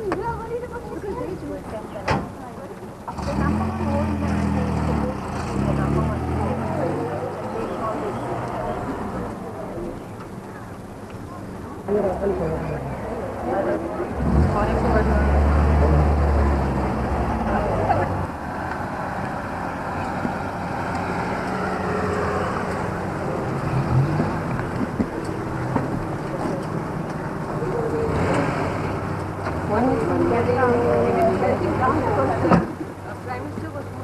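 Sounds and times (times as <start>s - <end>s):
people talking: 0.0s - 18.3s, 21.6s - 28.7s, 29.5s - 34.0s.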